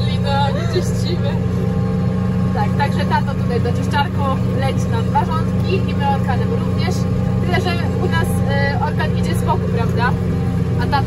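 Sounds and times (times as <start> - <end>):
tractor engine droning: 0.0 - 11.0.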